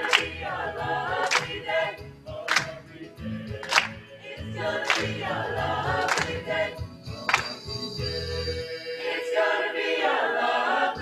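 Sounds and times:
group clapping in unison: 0:00.0 - 0:07.8
choir singing a cappella: 0:00.0 - 0:11.0.

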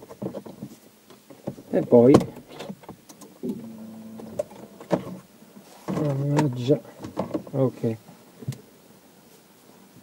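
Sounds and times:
low hum: 0:03.4 - 0:06.9.

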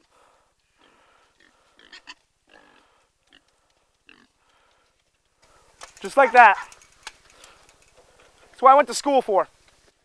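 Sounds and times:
pig grunting: 0:00.8 - 0:03.5, 0:04.1 - 0:04.3.

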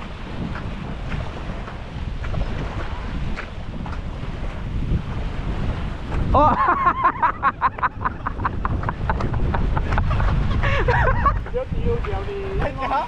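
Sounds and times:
waves washing on sand: 0:00.0 - 0:13.0
wind on microphone: 0:00.0 - 0:13.0.

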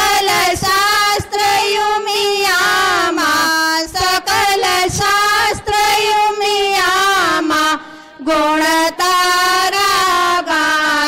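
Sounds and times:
woman singing devotional song: 0:00.0 - 0:11.0.

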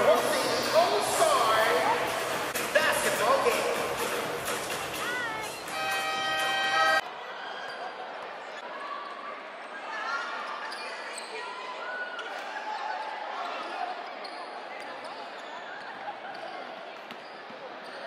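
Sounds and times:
crowd chatter and calls: 0:00.0 - 0:18.0.

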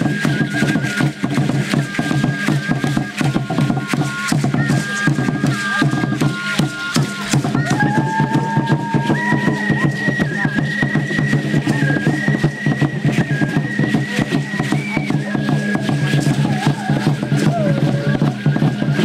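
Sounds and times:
held high tone: 0:00.0 - 0:19.0
standing drums beating fast: 0:00.0 - 0:19.0.

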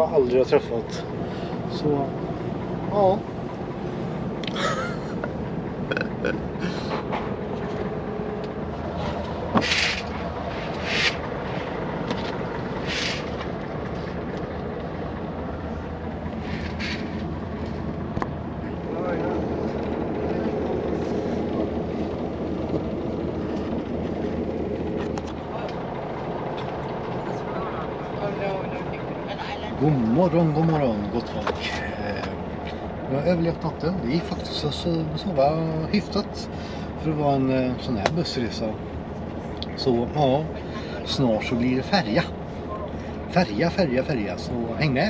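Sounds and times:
bus engine and road rumble: 0:00.0 - 0:45.0
short hisses: 0:10.6 - 0:11.2, 0:12.8 - 0:13.4.

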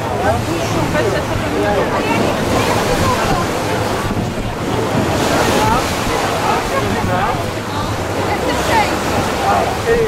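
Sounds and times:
ship engine low hum: 0:00.0 - 0:10.0
water rushing along hull: 0:00.0 - 0:10.0
wind buffeting microphone: 0:00.0 - 0:10.0.

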